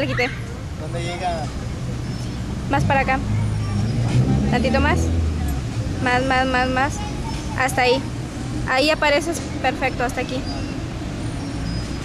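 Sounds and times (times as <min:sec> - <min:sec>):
road traffic noise: 0:00.0 - 0:12.0.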